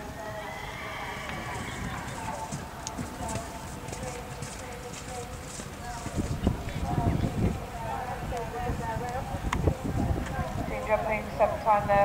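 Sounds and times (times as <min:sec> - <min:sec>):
background voices: 0:00.0 - 0:12.0
horse hoofbeats on grass: 0:01.1 - 0:07.6.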